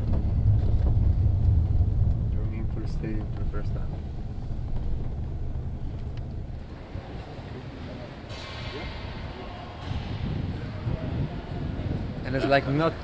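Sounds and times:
vehicle engine and tyres rumbling: 0.0s - 13.0s.

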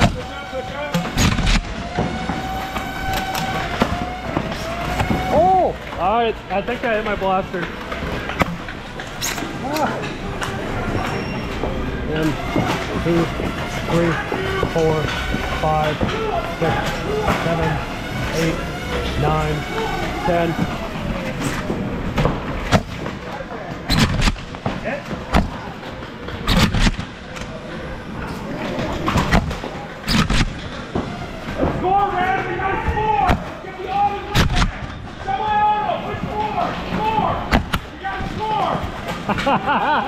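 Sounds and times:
players calling out: 0.0s - 40.0s.

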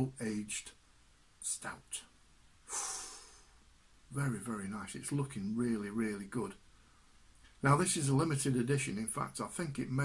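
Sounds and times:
man breathing out through nose: 2.7s - 3.6s.

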